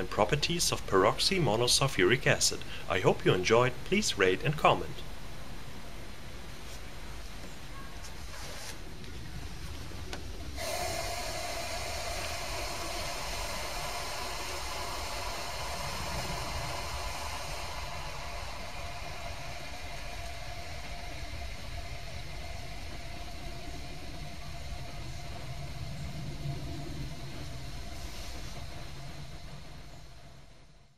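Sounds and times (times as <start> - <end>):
small motor humming: 10.6 - 27.0.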